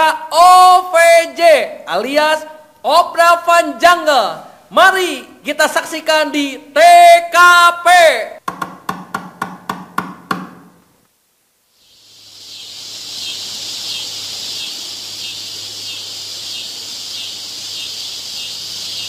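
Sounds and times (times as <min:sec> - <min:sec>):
insects chirping: 0:11.7 - 0:19.0.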